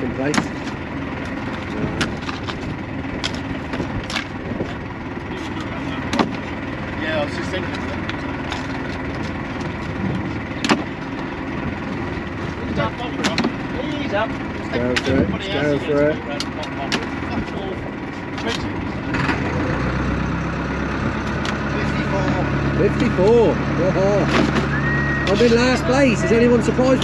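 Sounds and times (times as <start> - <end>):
steady background noise: 0.0 - 27.0.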